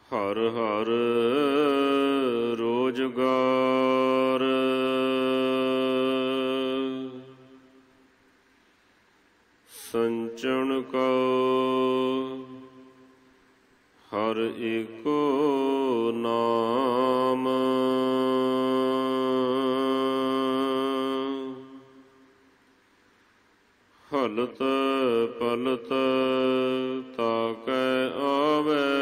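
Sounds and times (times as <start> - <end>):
person chanting a long note: 14.3 - 22.1.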